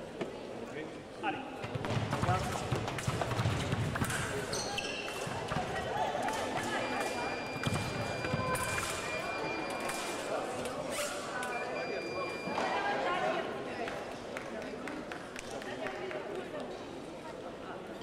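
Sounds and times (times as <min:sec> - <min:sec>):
scoring machine beep: 0:06.6 - 0:10.5, 0:11.4 - 0:13.0.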